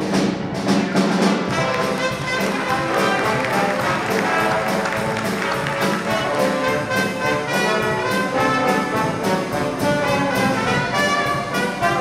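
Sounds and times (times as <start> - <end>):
dixieland band playing: 0.0 - 12.0.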